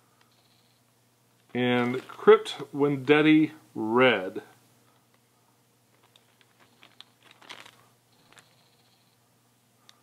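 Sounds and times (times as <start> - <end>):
plastic bag crinkling: 1.5 - 2.5, 5.9 - 8.6.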